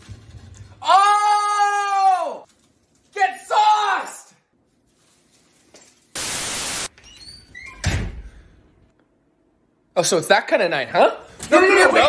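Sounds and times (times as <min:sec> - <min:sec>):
static hiss: 0:06.2 - 0:06.9.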